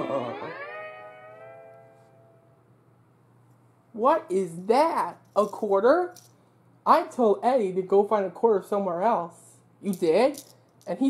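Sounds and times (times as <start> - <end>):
slide guitar note bending upward: 0.0 - 2.6.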